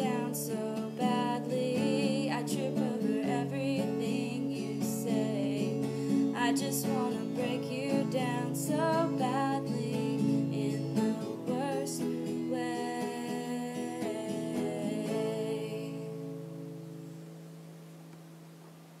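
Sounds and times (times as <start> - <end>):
wordless singing: 0.0 - 16.4
acoustic guitar playing: 0.0 - 19.0.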